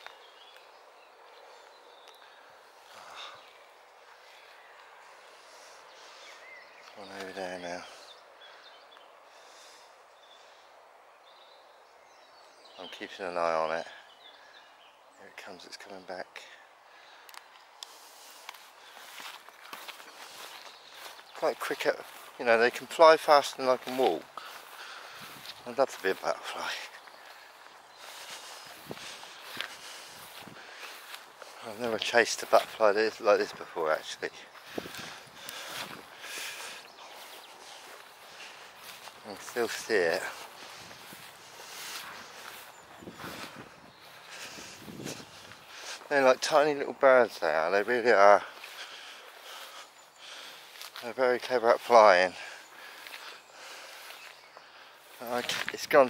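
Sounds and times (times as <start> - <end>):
footsteps through long grass: 0.0 - 10.7, 16.8 - 56.0.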